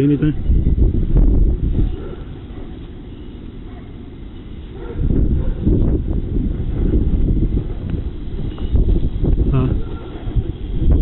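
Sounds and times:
wind buffeting microphone: 0:00.0 - 0:11.0
low muffled rumble: 0:04.7 - 0:11.0.

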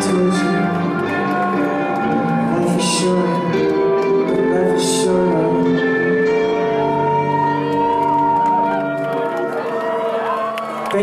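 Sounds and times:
rock band with electric guitars: 0:00.0 - 0:11.0.

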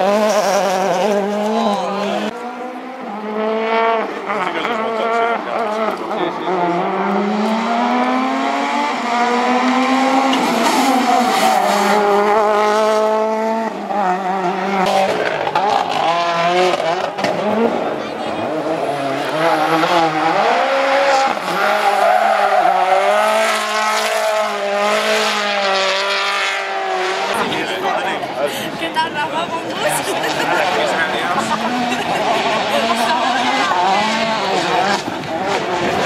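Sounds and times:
rally car engines revving: 0:00.0 - 0:36.0.

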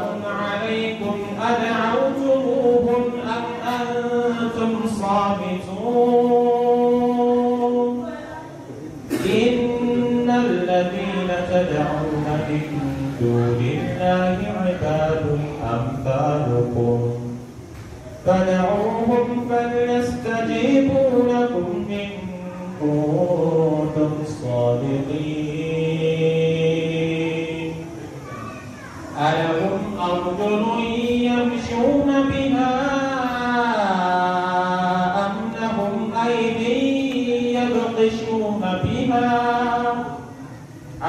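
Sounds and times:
man chanting into a microphone: 0:00.0 - 0:17.6, 0:18.2 - 0:28.0, 0:29.1 - 0:41.0.

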